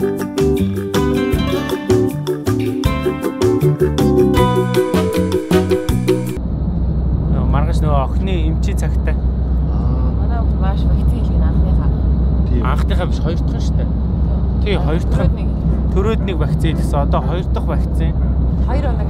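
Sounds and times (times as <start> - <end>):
background music: 0.0 - 6.4, 14.6 - 19.0
road and engine rumble: 0.0 - 19.0
man talking: 7.3 - 10.2, 12.5 - 13.9, 14.6 - 15.3, 15.9 - 18.2.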